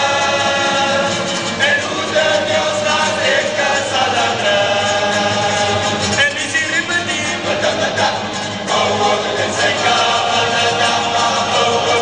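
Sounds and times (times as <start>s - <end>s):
lead male voice singing: 0.0s - 12.0s
male choir singing: 0.0s - 12.0s.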